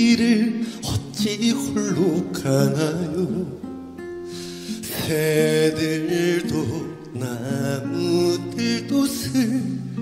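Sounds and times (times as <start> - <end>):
man singing with vibrato: 0.0 - 10.0.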